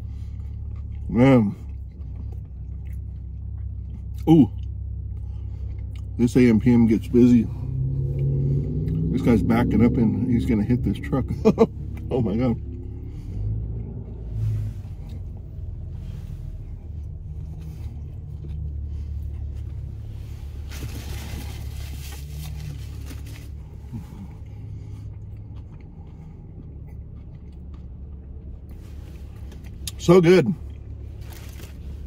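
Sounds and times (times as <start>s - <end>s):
car engine rumble from inside: 0.0s - 32.0s.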